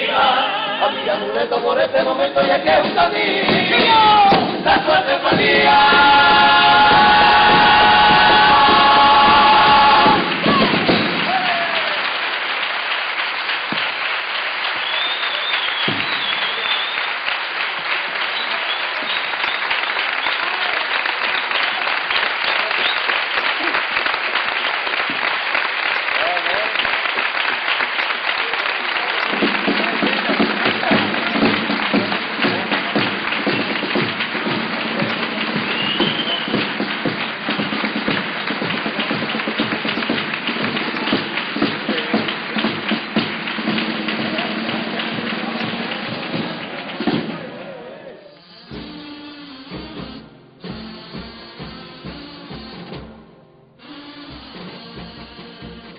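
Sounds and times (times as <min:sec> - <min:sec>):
audience applauding: 0:00.0 - 0:53.1
people shouting: 0:02.7 - 0:12.0
whistles: 0:14.8 - 0:17.2, 0:18.2 - 0:20.5, 0:21.2 - 0:23.6, 0:35.6 - 0:36.8.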